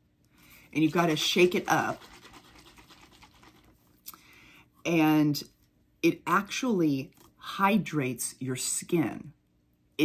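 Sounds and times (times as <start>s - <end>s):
plastic bottle shaken by hand: 0.6s - 4.0s.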